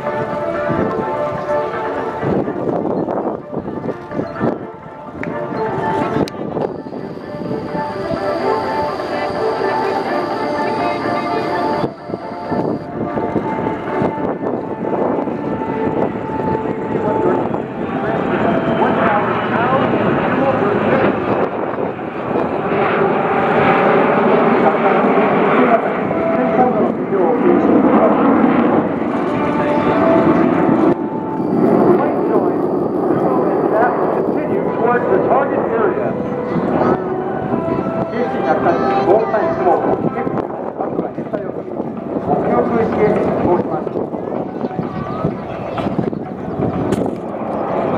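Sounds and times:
turboprop aircraft drone: 0.0 - 47.9
people's voices: 0.9 - 14.1, 16.4 - 21.5, 24.2 - 47.9
jets flying: 5.4 - 47.9.

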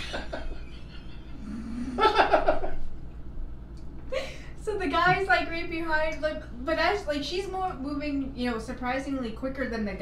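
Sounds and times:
low hummed voice: 0.0 - 2.7.

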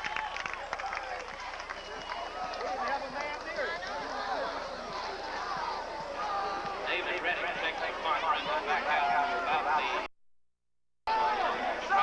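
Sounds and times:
crowd calling and shouting: 0.0 - 10.1, 11.1 - 12.0.

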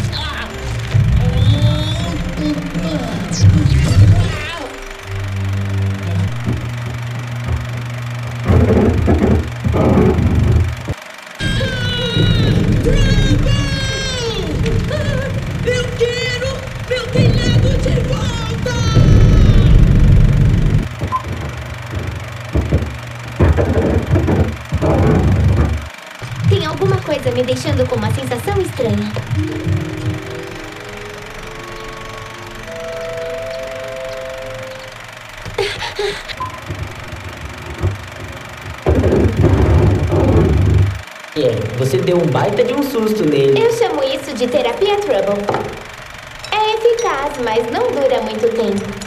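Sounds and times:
film music with low bass: 0.0 - 35.4
high warbling voice: 11.4 - 20.8.

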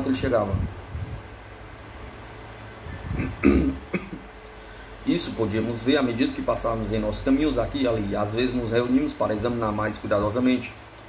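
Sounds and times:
man clearing his throat: 3.1 - 4.3.

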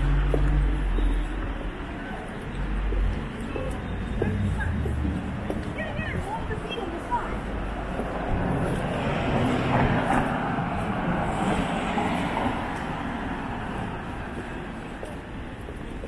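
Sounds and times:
car passing: 4.0 - 16.0.

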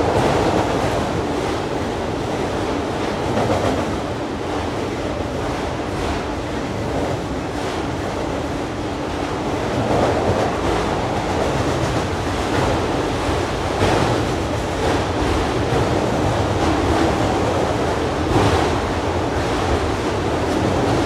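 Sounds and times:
freight train rumbling over bridge: 0.0 - 21.0.

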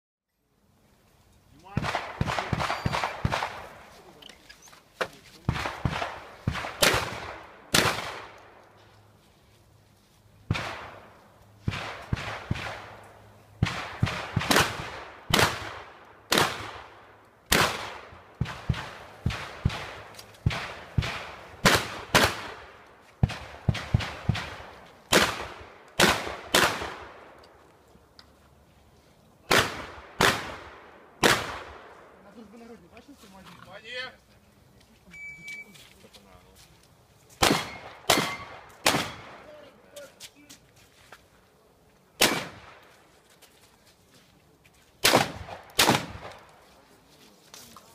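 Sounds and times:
shotgun shots: 1.7 - 3.8, 5.5 - 8.6, 10.5 - 13.0, 13.6 - 27.4, 29.5 - 31.9, 37.4 - 39.6, 42.2 - 42.8, 45.0 - 46.5.

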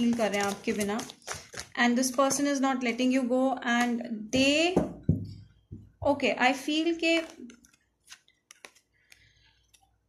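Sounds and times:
cards clicking: 7.2 - 9.8.

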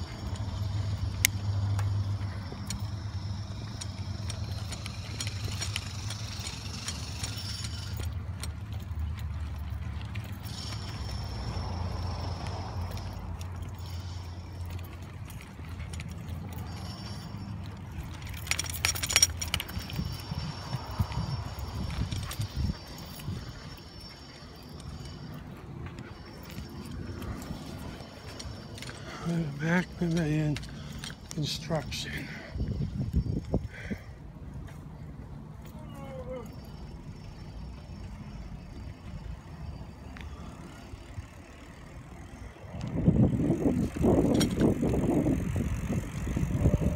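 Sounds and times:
bicycle metallic clinking: 0.0 - 46.9
tyres and wind rumble: 0.0 - 46.9.

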